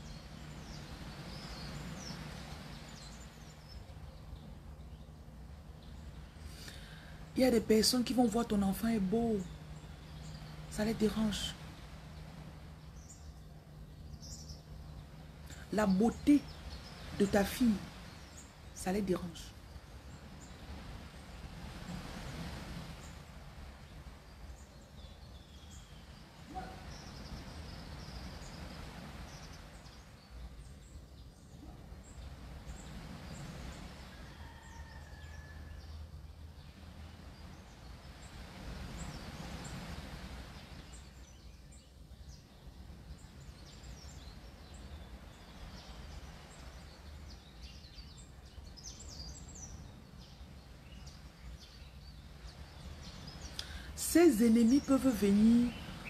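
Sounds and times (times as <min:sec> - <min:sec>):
background hiss: 0:00.0 - 0:56.0
faint high bird chirps: 0:24.4 - 0:36.0.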